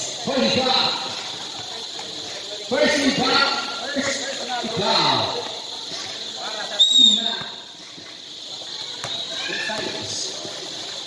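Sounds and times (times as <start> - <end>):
scattered voices: 0.0 - 11.0
referee whistle blast: 6.8 - 7.5.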